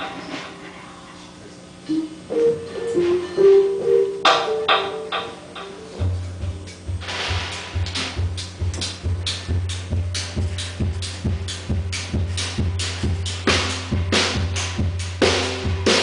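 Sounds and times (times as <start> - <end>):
keyboard melody: 1.9 - 6.8
percussion beat: 1.9 - 16.0
pulsing bass: 5.9 - 16.0.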